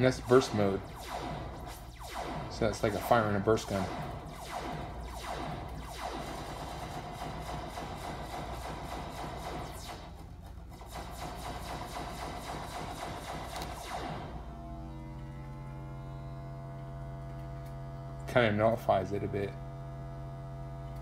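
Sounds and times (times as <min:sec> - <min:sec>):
synthesizer clicky pulses: 0:00.0 - 0:17.8
buzzy synthesizer drone: 0:00.0 - 0:21.0.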